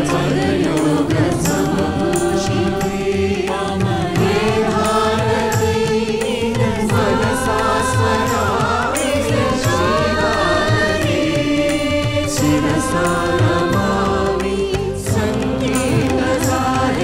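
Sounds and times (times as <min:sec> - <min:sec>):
group singing a chant-like song: 0:00.0 - 0:17.0
instrumental accompaniment: 0:00.0 - 0:17.0.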